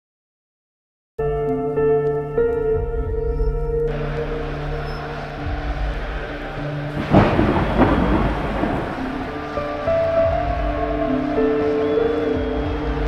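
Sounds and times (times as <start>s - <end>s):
thunderclap rumbling: 5.6s - 13.0s.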